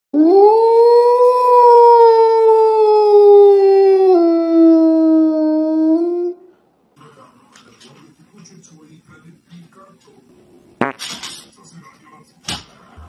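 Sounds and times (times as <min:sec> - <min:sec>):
dog howling: 0:00.2 - 0:06.5.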